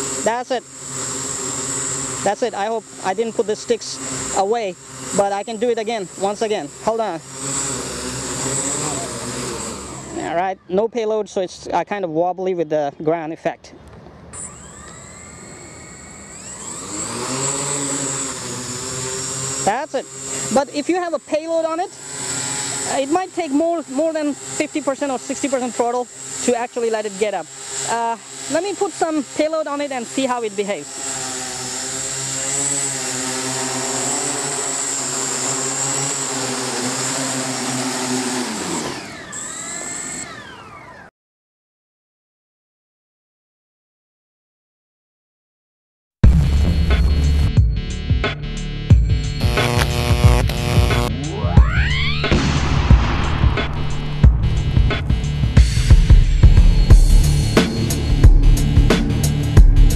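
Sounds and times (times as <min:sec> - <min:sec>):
drone motors whining and humming: 0:00.0 - 0:10.6, 0:13.9 - 0:41.1, 0:46.3 - 0:59.9.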